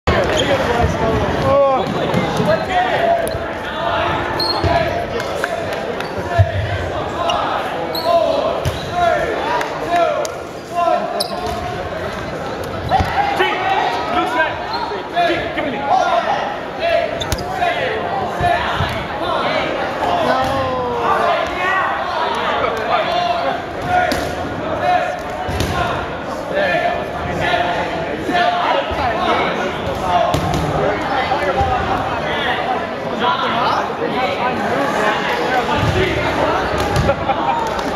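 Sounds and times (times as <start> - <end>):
crowd shouting and chattering: 0.0 - 37.9
people shouting: 20.1 - 21.9.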